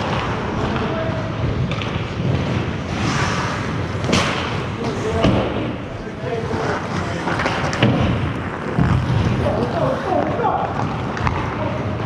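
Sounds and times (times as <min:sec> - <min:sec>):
rink background rush: 0:00.0 - 0:12.0
sticks and puck hitting boards: 0:04.0 - 0:05.8, 0:07.0 - 0:12.0.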